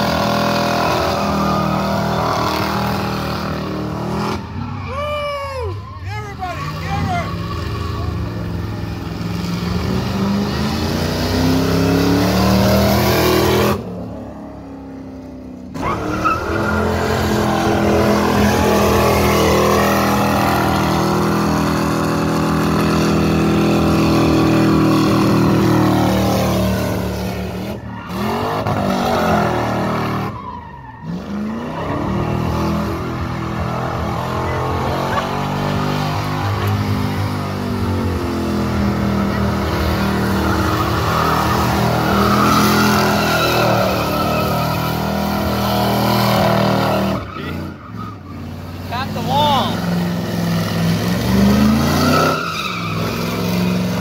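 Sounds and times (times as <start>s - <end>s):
car engine revving: 0.0s - 4.8s, 6.4s - 54.0s
tires screeching on pavement: 0.0s - 54.0s.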